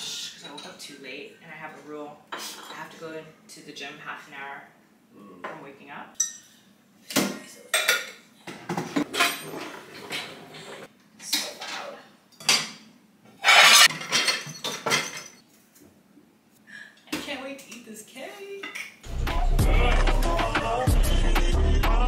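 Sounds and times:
dishes clinking and clattering: 0:06.2 - 0:15.4.

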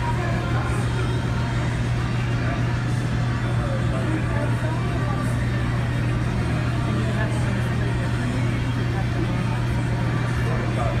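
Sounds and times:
constant low hum: 0:00.0 - 0:11.0
helicopter rotor drone: 0:00.0 - 0:11.0.

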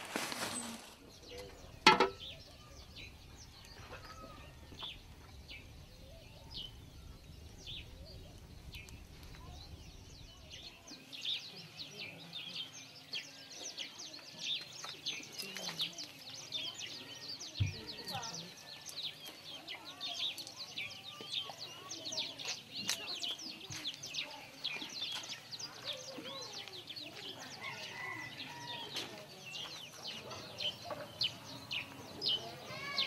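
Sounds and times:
small birds chirping: 0:00.0 - 0:33.0.

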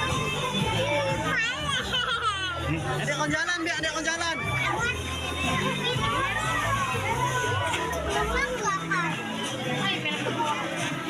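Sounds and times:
women and children talking excitedly: 0:00.0 - 0:11.0.

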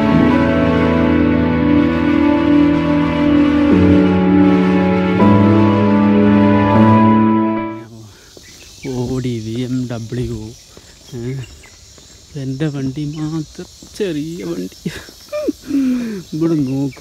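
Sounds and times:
insects chirring: 0:00.0 - 0:17.0
man talking: 0:07.7 - 0:08.2, 0:08.8 - 0:11.6, 0:12.3 - 0:15.0, 0:16.2 - 0:17.0.

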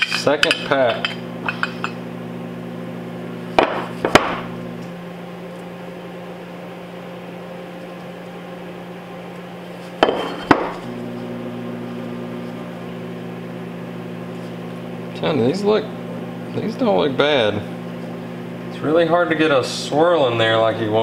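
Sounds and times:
steady electrical hum: 0:00.0 - 0:21.0.

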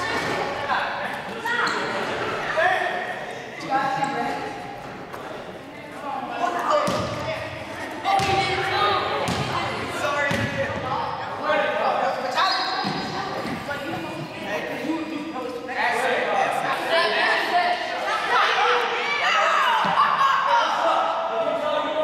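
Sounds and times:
voices talking in a gym: 0:00.0 - 0:22.0
basketball bouncing on wooden floor: 0:09.3 - 0:09.5, 0:10.3 - 0:10.6.

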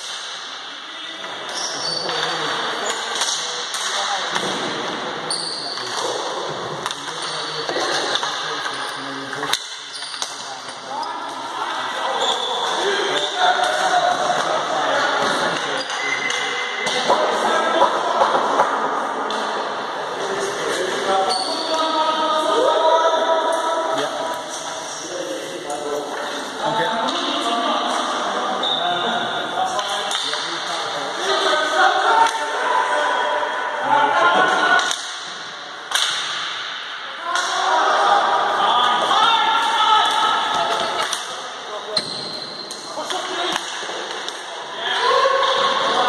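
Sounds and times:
hockey sticks clacking on ball: 0:01.2 - 0:04.6, 0:05.4 - 0:10.8, 0:29.7 - 0:30.7, 0:34.8 - 0:36.6, 0:37.3 - 0:37.6, 0:39.6 - 0:41.4, 0:42.0 - 0:44.6
players shouting: 0:37.2 - 0:41.5.

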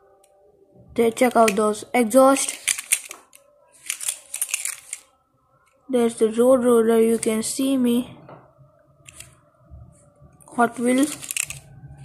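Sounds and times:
metal toy scratching and clicking: 0:02.4 - 0:05.1, 0:09.1 - 0:09.3, 0:10.7 - 0:11.7.

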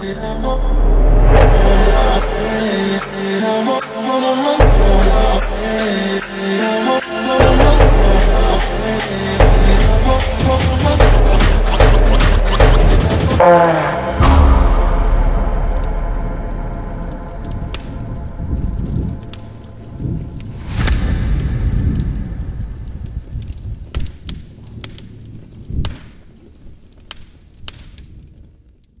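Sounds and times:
low rumble: 0:00.0 - 0:03.6, 0:04.6 - 0:06.2, 0:07.4 - 0:13.4, 0:14.0 - 0:26.9
sharp hits: 0:00.4 - 0:04.0, 0:07.4 - 0:18.6, 0:20.6 - 0:23.6.

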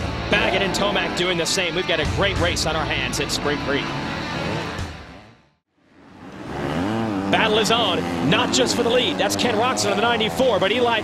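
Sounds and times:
engine revving up and down: 0:00.0 - 0:11.0
motocross bike engines: 0:00.0 - 0:11.0.

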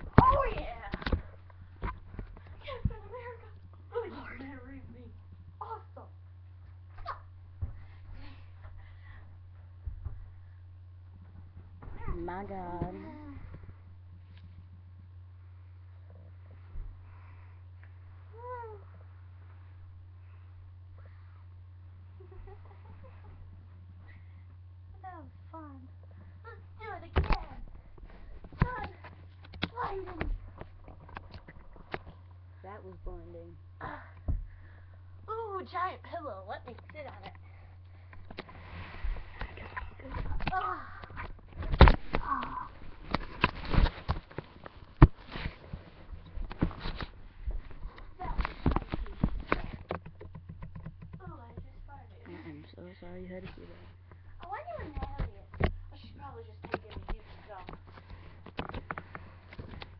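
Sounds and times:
low electrical hum: 0:00.0 - 0:59.9
fabric rustling and scraping: 0:38.4 - 0:40.4.

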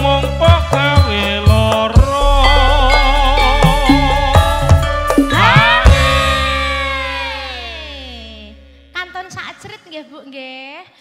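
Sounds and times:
low bass tone: 0:01.4 - 0:09.3
band chord sliding downward: 0:02.1 - 0:09.0.

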